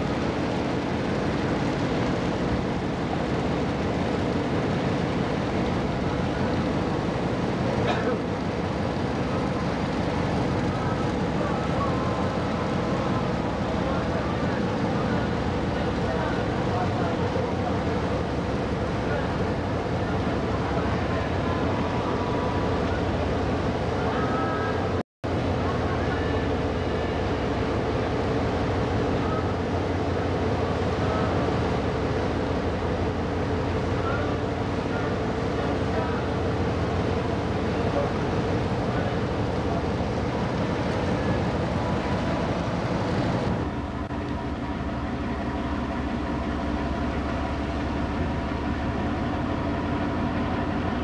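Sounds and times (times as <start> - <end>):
ship engine rumbling: 0.0 - 51.0
faint voices: 9.3 - 25.0, 33.8 - 43.6.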